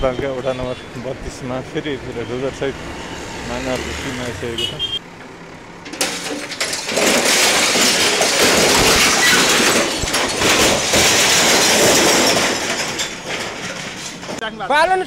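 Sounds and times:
walls crashing and rubble falling: 0:05.9 - 0:14.5.

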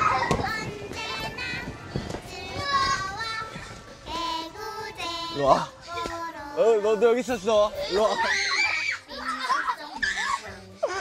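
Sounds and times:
children squealing and shouting: 0:00.0 - 0:00.5, 0:07.8 - 0:11.0
thump: 0:00.2 - 0:00.7.

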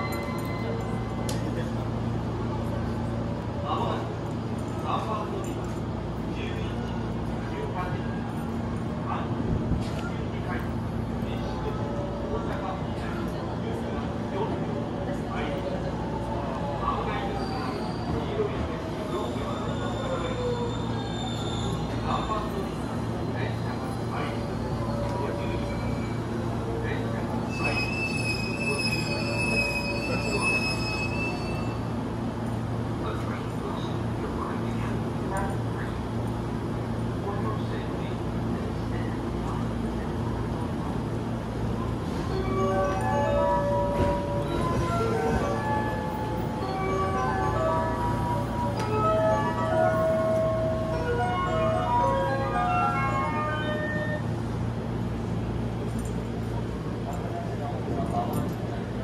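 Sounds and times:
train wheels squealing on rails: 0:00.0 - 0:01.8, 0:15.7 - 0:32.1
standing train humming: 0:21.8 - 0:59.0.

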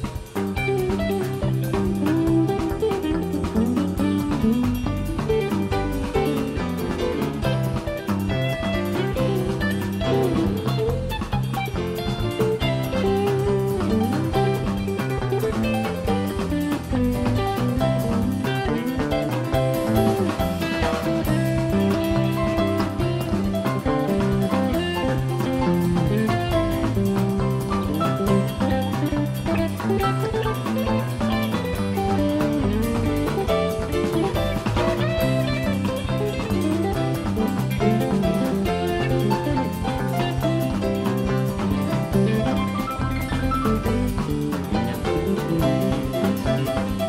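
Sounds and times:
bass guitar: 0:00.0 - 0:47.0
drum kit: 0:00.0 - 0:47.0
electric guitar: 0:00.0 - 0:47.0
keyboards: 0:00.0 - 0:47.0.

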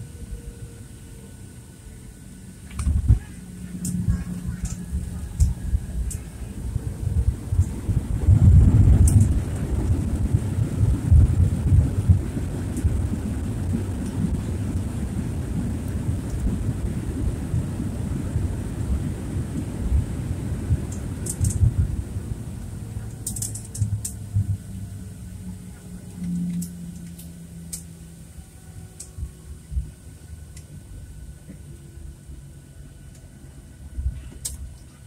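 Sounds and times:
jet engines and wheels rumbling: 0:00.0 - 0:35.0.

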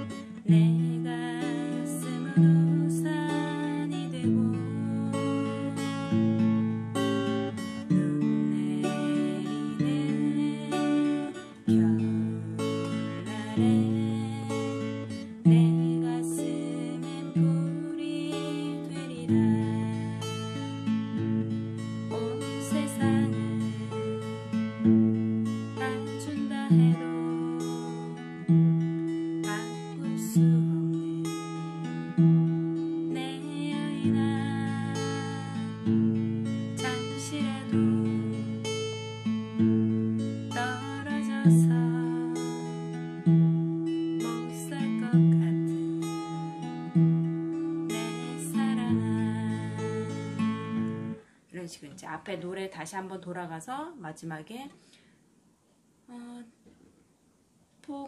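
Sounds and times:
fingerpicked acoustic guitar: 0:00.0 - 0:55.2.

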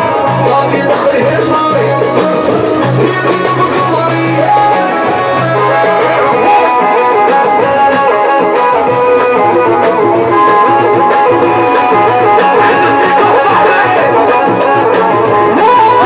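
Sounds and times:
pulsing bass: 0:00.0 - 0:16.0
synthesizer melody: 0:00.0 - 0:16.0.

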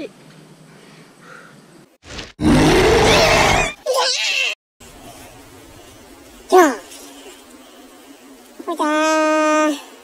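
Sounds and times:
harsh rising cry: 0:02.4 - 0:03.8.

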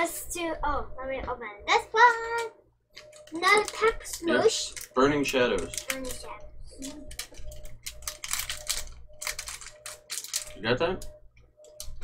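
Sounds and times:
foil wrapper crinkling: 0:07.1 - 0:10.6.

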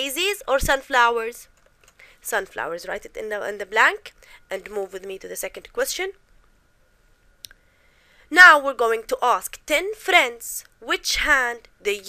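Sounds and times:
woman speaking: 0:00.0 - 0:01.5, 0:02.2 - 0:06.2, 0:08.3 - 0:12.0.

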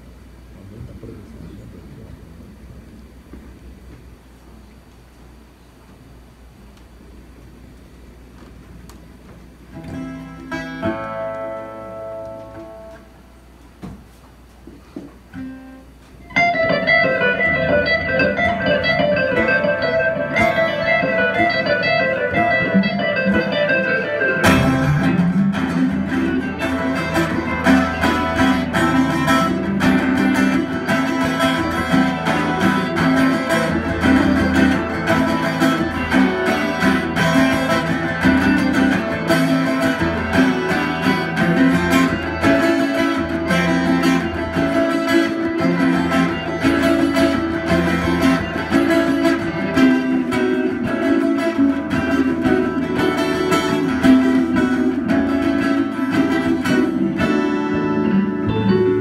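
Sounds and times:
guitar playing melody: 0:09.7 - 0:13.7, 0:15.3 - 0:59.0.

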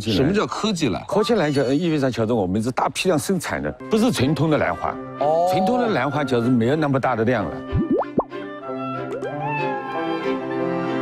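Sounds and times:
soft background music: 0:01.6 - 0:11.0
cartoon pop bloop: 0:07.7 - 0:08.3.

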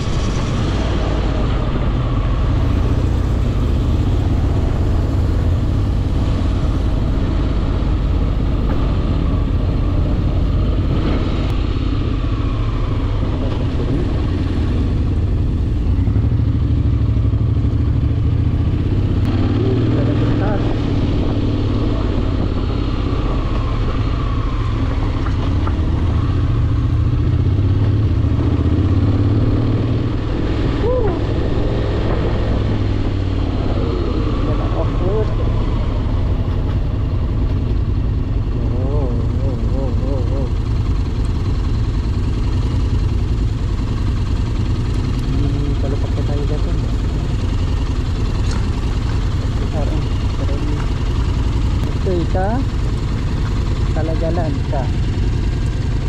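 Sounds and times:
wind rush: 0:00.0 - 0:16.4
motorcycle engine running: 0:00.0 - 0:56.0.

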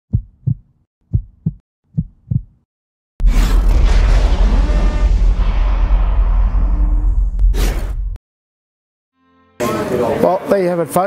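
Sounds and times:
heartbeat thumps: 0:00.1 - 0:02.7.

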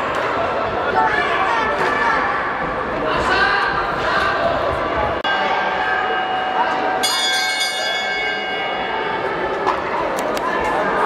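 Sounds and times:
hand bell ringing: 0:05.3 - 0:09.4.

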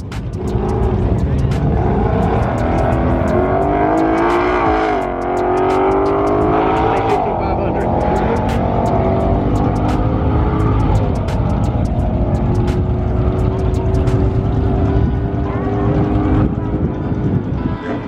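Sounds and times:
car engine accelerating: 0:00.0 - 0:18.0.

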